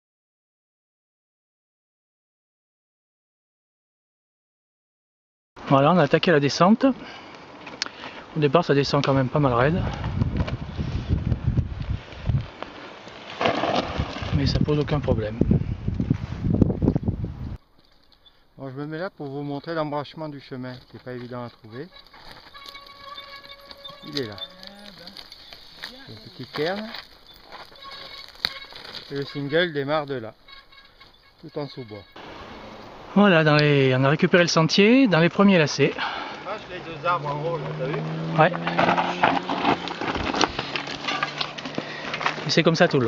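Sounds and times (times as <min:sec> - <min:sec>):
bike rolling on stony track: 0:06.2 - 0:16.5, 0:17.6 - 0:32.6, 0:35.2 - 0:43.0
tyres crunching over gravel: 0:06.9 - 0:15.4, 0:17.6 - 0:32.4, 0:35.4 - 0:43.0
brake squeal: 0:19.2 - 0:33.0, 0:36.0 - 0:42.4
tyre clicks on stones: 0:20.6 - 0:29.3, 0:38.8 - 0:42.8.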